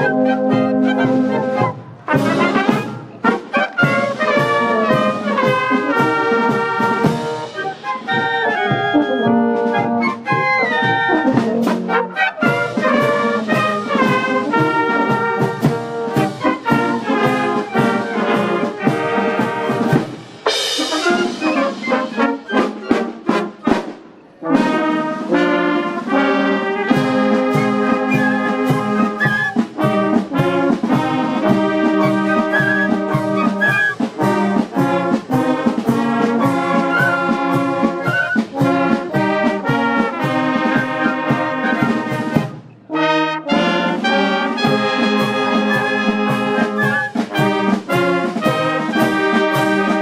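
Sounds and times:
wind band playing: 0.0s - 50.0s.

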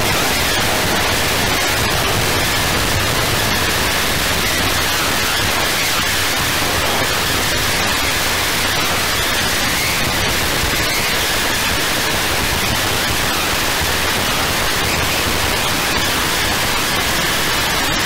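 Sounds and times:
dense static hiss: 0.0s - 18.0s.

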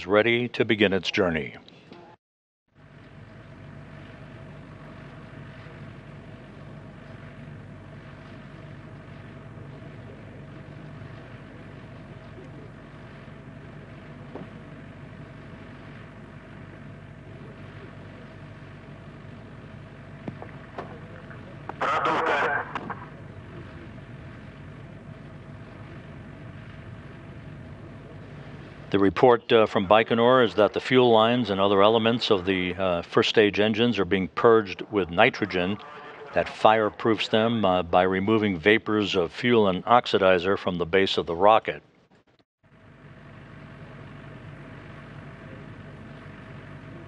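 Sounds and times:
steady mechanical hum: 0.0s - 47.0s.

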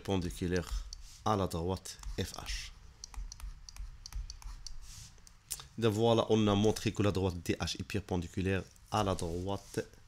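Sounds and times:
stylus tapping on tablet: 2.0s - 4.8s.

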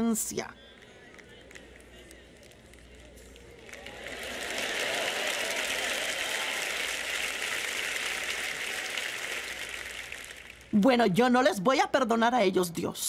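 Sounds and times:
audience applause: 1.0s - 10.8s.

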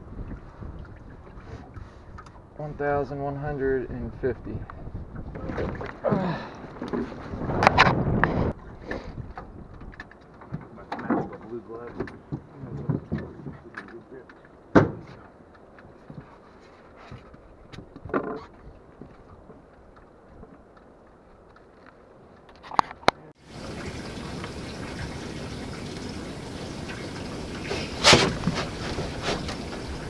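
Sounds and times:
water splashing and streaming: 0.0s - 30.0s
handling noises on aluminium deck: 8.8s - 14.0s, 14.7s - 19.6s, 27.6s - 30.0s.

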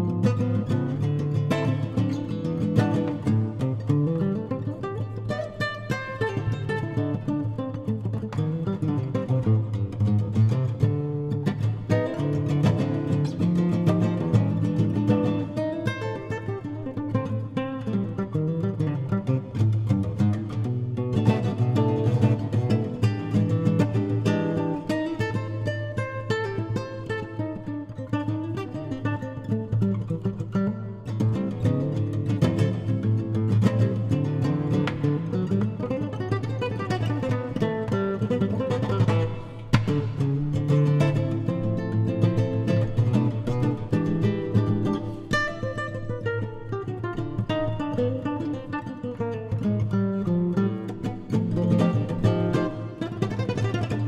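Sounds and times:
nylon-string guitar fingerstyle: 0.0s - 54.0s.

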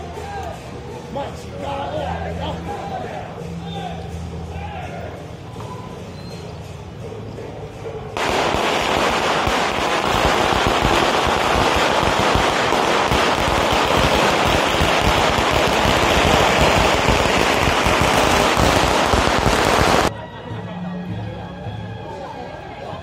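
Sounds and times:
firecrackers crackling: 8.2s - 20.1s.

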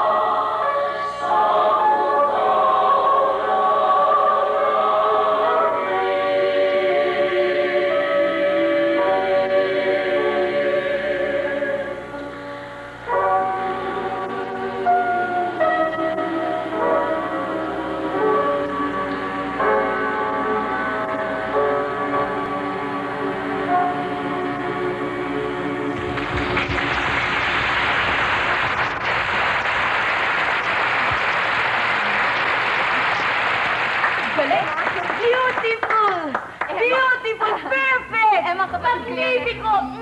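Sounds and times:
choir singing: 0.0s - 12.3s, 13.1s - 26.7s
applause: 26.0s - 36.9s.

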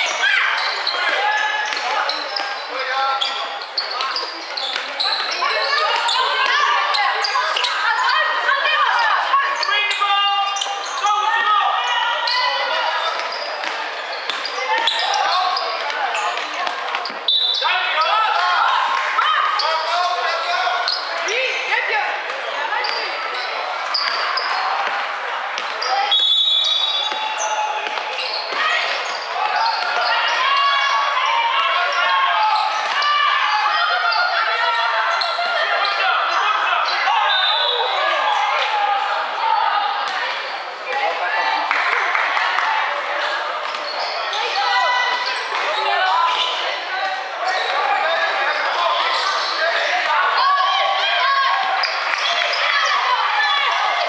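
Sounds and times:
voices calling out in hall: 0.0s - 54.0s.

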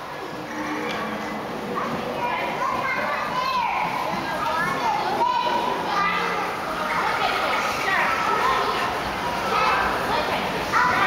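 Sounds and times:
children talking and calling out: 0.0s - 11.0s.

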